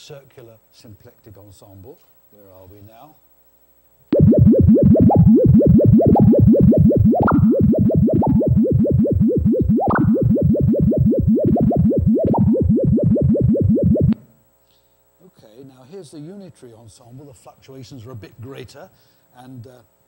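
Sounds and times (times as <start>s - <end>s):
sine tone pitch swoops: 4.2s - 14.3s.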